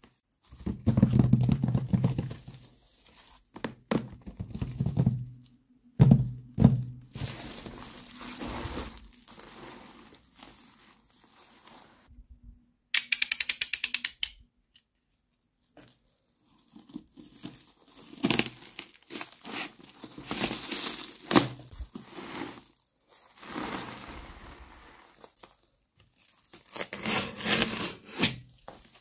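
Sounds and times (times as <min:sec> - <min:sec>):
plastic film crinkling: 0:07.1 - 0:12.1, 0:15.7 - 0:27.0
knife tearing plastic film: 0:16.7 - 0:22.7, 0:25.1 - 0:29.0.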